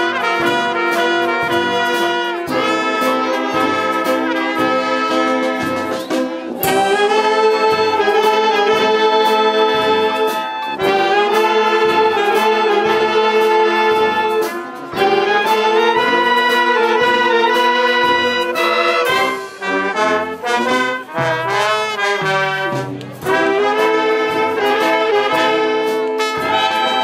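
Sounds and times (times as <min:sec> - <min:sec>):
wind band playing chords: 0:00.0 - 0:27.0.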